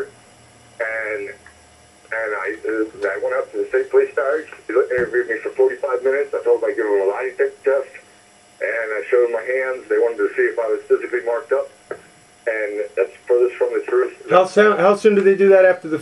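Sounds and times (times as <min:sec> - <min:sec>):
person talking over telephone: 0:00.8 - 0:01.4, 0:02.1 - 0:16.0.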